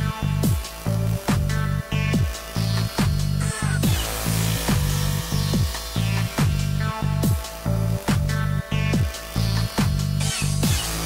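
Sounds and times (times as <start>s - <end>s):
synth bass notes: 0.0s - 11.0s
deep kick drum: 0.4s - 9.2s.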